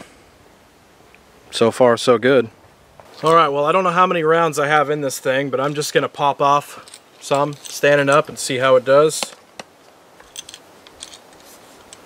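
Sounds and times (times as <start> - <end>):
rifle clicks and rattles: 9.2 - 12.0.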